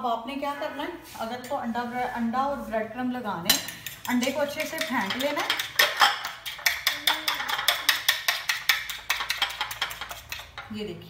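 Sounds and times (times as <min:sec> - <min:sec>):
fork beating eggs in glass bowl: 0:03.5 - 0:10.7.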